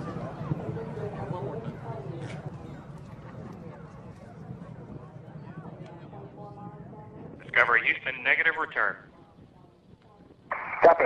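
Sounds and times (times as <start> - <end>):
voice over radio: 7.4 - 9.0, 10.5 - 11.0.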